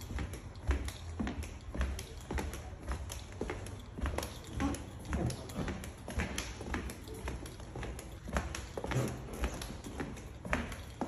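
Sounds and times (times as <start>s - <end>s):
flip-flop footsteps on plank floor: 0.0s - 11.0s.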